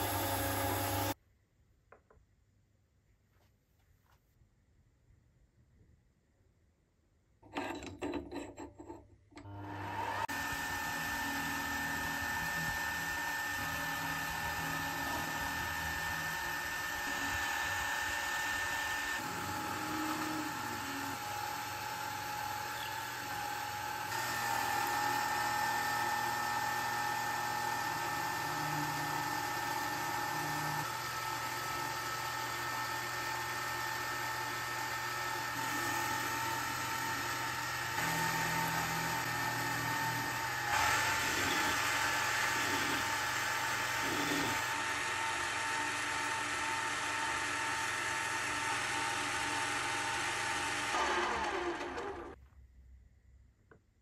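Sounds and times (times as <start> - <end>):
drill boring into metal: 0.0 - 1.2, 9.5 - 52.4
lathe spindle whining: 0.0 - 1.2, 9.4 - 52.4
lathe tool cutting metal: 0.0 - 1.2, 9.6 - 52.4.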